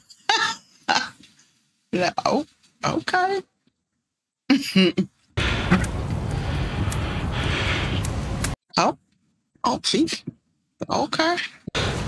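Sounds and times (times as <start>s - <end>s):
person making throat sounds: 0.3s - 1.2s, 4.9s - 6.0s.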